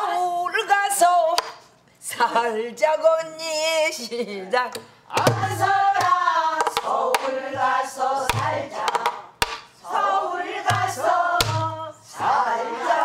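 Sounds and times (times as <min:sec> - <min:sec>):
drum stick strokes: 0:10.6 - 0:12.0
low drum thumps: 0:10.7 - 0:11.8.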